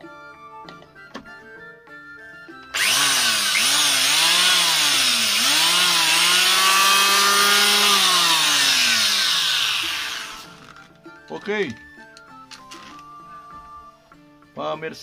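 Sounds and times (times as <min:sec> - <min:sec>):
electric hand planer whine: 0:02.7 - 0:10.8.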